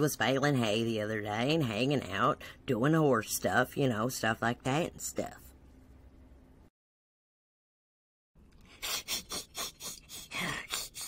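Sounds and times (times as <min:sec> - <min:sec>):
person wheezing laughter: 0:08.7 - 0:11.0.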